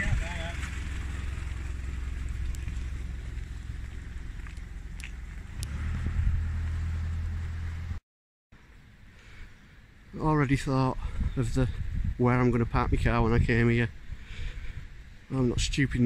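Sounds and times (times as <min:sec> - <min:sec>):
low engine rumble: 0:00.0 - 0:08.0.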